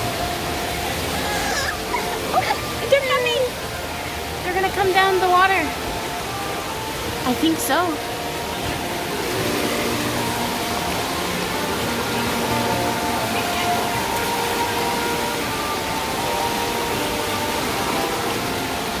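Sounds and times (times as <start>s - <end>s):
faint music: 0.0s - 19.0s
water rushing over cascades: 0.0s - 19.0s.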